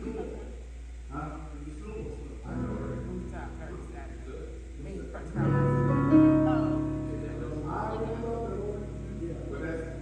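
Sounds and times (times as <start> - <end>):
instrument chords ringing: 2.5 - 10.0.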